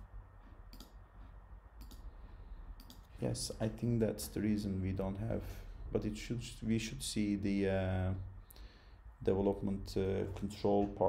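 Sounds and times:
faint low hum: 0.0s - 11.0s
computer mouse clicks: 0.4s - 2.1s, 2.8s - 3.1s.

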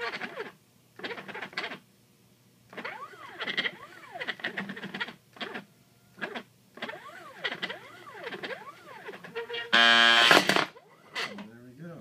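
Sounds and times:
stepper motors whining: 2.7s - 11.4s.

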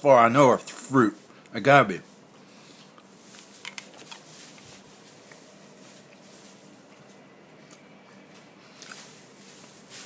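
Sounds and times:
soft chewing: 2.2s - 9.9s.

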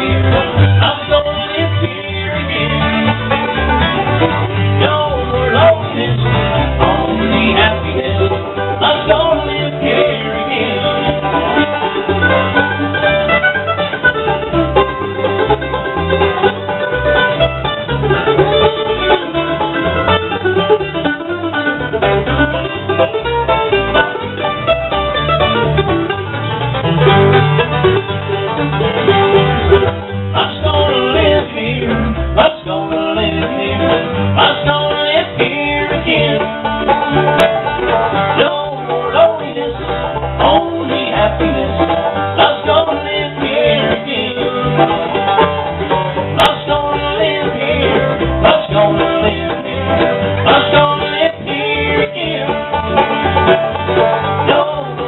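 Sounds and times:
acoustic guitar: 0.0s - 55.0s
banjo picking: 0.0s - 55.0s
mandolin: 0.0s - 55.0s
upright bass: 0.0s - 55.0s.

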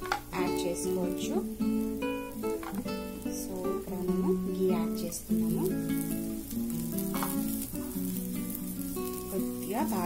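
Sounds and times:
ghee sizzling on hot pan: 0.0s - 10.0s.

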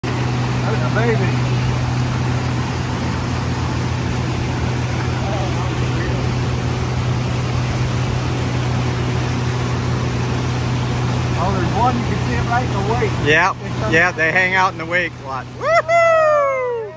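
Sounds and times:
boat wake rushing: 0.0s - 16.9s
outboard motor droning: 0.0s - 16.9s
wind: 0.0s - 16.9s.

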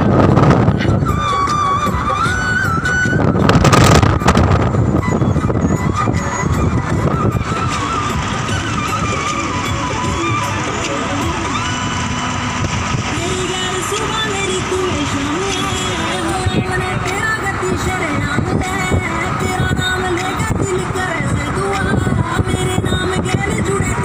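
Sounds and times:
car road and wind noise: 0.0s - 24.0s
wind rushing across microphone: 0.0s - 24.0s.

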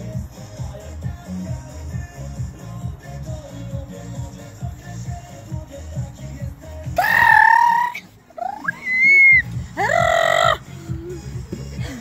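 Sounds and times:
dance music bass beat: 0.1s - 12.0s
children shrieking: 7.0s - 10.6s.

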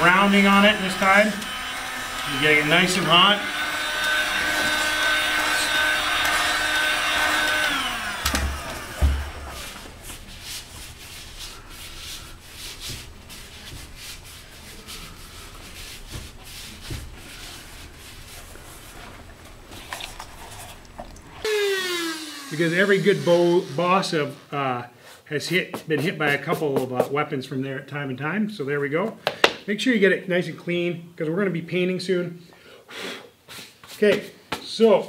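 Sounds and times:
heat gun whine: 0.0s - 20.1s, 20.8s - 24.6s
low thumps: 8.1s - 11.0s
soft rubbing of foam: 9.5s - 21.0s.

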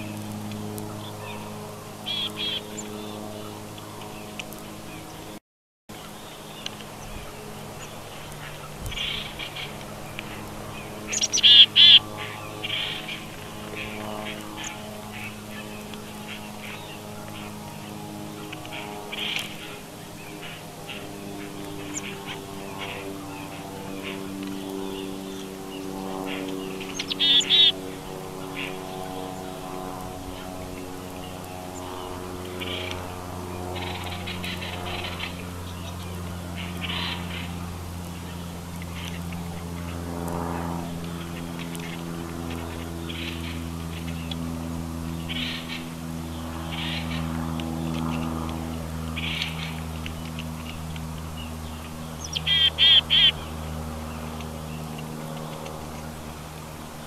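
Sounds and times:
wild birds calling: 0.0s - 57.0s.

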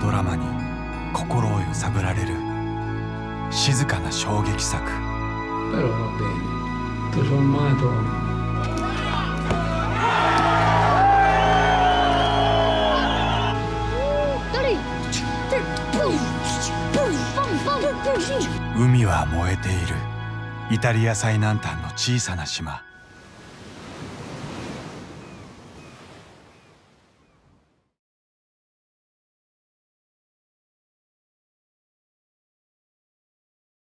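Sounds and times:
background music with low drone: 0.0s - 23.3s
men shouting and whooping: 8.6s - 14.6s
sea waves washing: 23.0s - 27.4s.

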